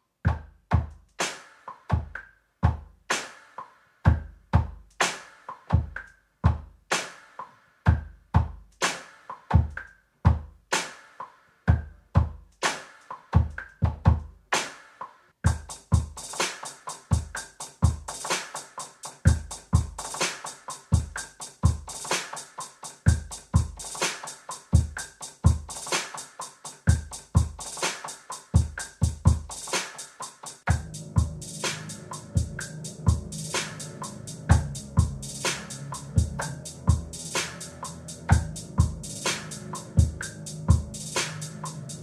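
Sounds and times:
electronic kick and snare drums: 0.3 - 14.9, 15.5 - 42.0
rapid hi-hats: 0.3 - 42.0
hip-hop instrumental beat: 15.5 - 42.0.

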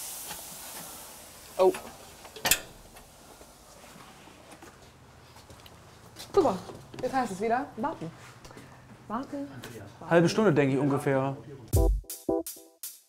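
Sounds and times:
steam hissing in an oven: 0.0 - 4.4.

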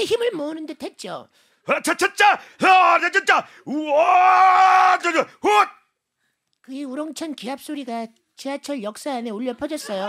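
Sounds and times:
man shouting with effort: 1.8 - 5.8.

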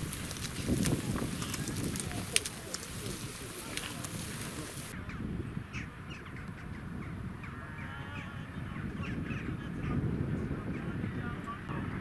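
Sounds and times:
wind rumble: 0.0 - 12.0
crowd murmur: 0.8 - 5.1.

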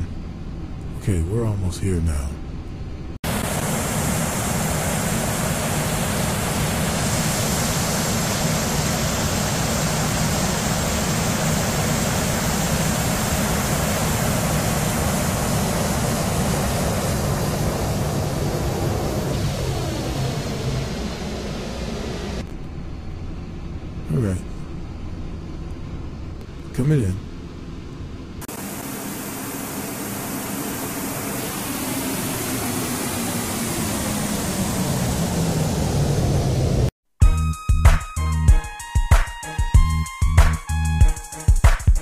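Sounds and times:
jet engines rushing: 3.1 - 24.4, 28.3 - 36.9, 37.9 - 42.0.

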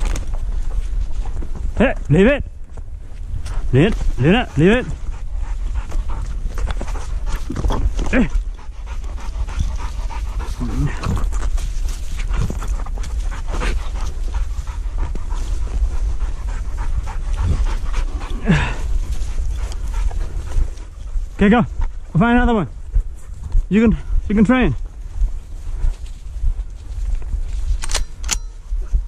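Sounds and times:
dog panting: 3.4 - 27.3.

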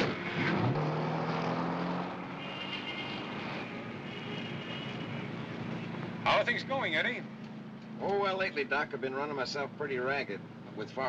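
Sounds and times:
car engine revving: 0.0 - 3.8
road noise: 0.0 - 11.0.

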